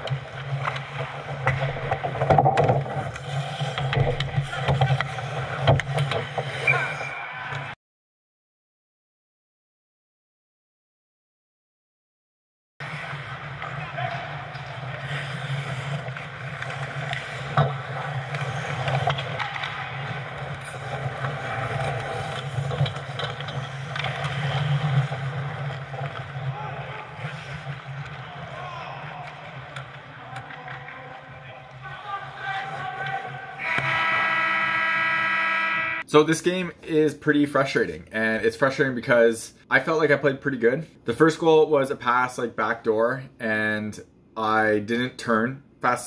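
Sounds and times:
hockey sticks and puck knocking: 0.0s - 6.7s, 13.1s - 34.4s
skates scraping ice: 0.0s - 7.2s, 12.8s - 36.0s
low rink hum: 0.0s - 7.8s, 12.8s - 36.8s
sharp crack of stick or puck: 13.6s - 26.3s
players calling out: 28.4s - 36.2s
loud steady buzzing tone: 33.6s - 36.0s.

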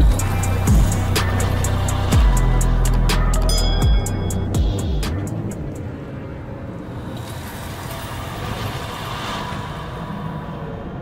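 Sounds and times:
low rumbling drone: 0.0s - 11.0s
whooshing swell: 0.0s - 11.0s.

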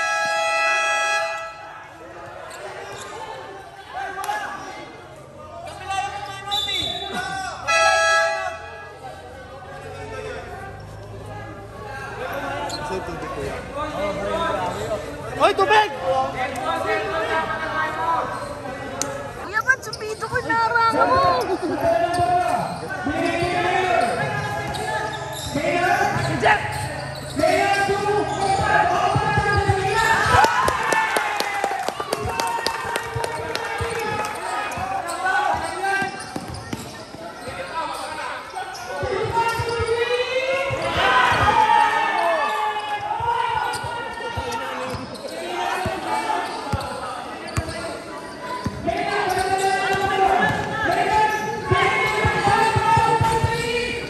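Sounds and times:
players calling out: 0.0s - 54.0s
basketball bouncing on court: 20.2s - 30.8s, 33.0s - 37.7s, 38.8s - 41.6s, 48.6s - 54.0s.

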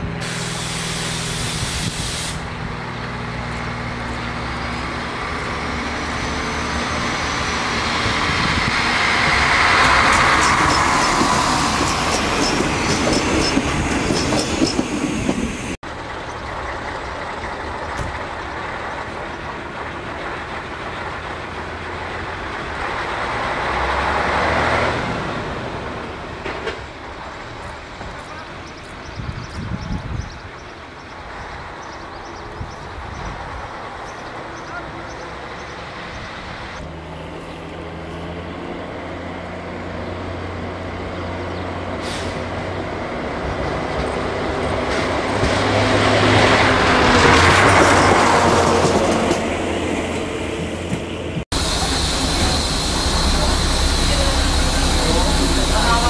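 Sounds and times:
train rumble: 0.0s - 38.2s, 38.8s - 56.0s
diesel railcar engine: 0.0s - 56.0s
train wheels clicking: 8.5s - 22.2s
rising and falling whine: 51.5s - 56.0s.

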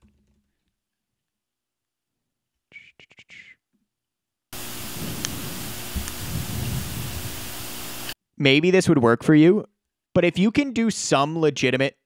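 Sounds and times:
faint clicks: 4.6s - 6.8s
low hum: 4.6s - 8.2s
static-like noise: 4.6s - 8.2s.

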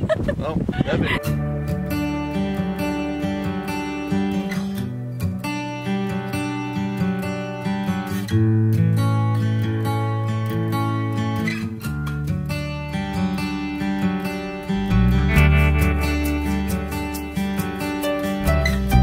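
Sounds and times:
strummed acoustic guitar chords: 1.2s - 19.0s.

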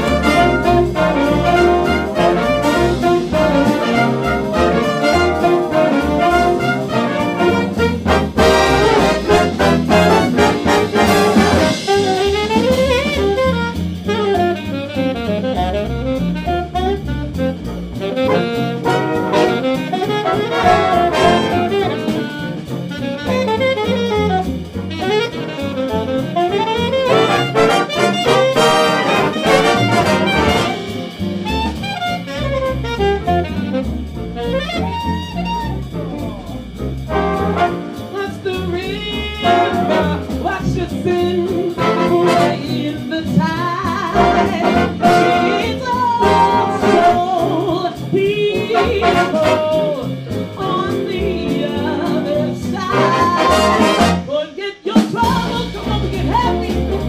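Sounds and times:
saxophone solo: 0.0s - 36.1s, 37.1s - 40.3s, 41.7s - 42.9s, 44.0s - 47.6s, 48.7s - 50.8s, 51.9s - 54.4s
jazz big band playing: 0.0s - 57.0s.

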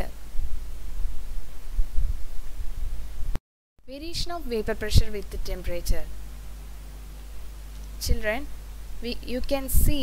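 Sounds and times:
recording hum and hiss: 0.0s - 10.0s.

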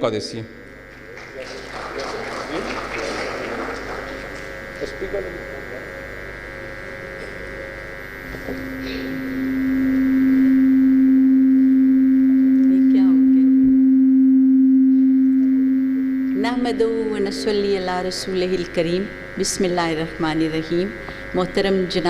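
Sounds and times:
microphone feedback low tone: 2.5s - 22.0s.

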